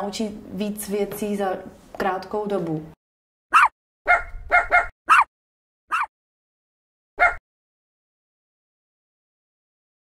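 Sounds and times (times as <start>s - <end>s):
dog barking: 3.5s - 5.3s, 5.9s - 6.1s, 7.2s - 7.4s.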